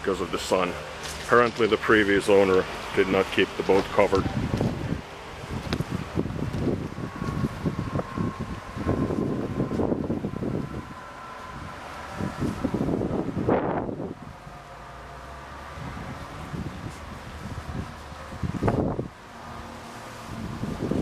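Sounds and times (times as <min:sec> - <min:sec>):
wind buffeting microphone: 0:03.4 - 0:21.0.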